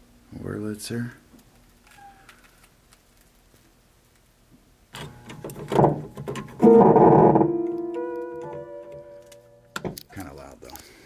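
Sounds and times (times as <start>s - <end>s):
electric organ notes: 6.6s - 9.7s.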